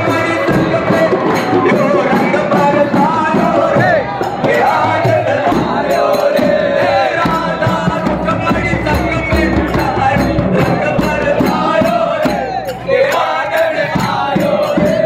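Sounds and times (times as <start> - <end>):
frame drum beating: 0.0 - 12.8
crowd singing and shouting: 0.0 - 15.0
man singing into a microphone: 0.0 - 15.0.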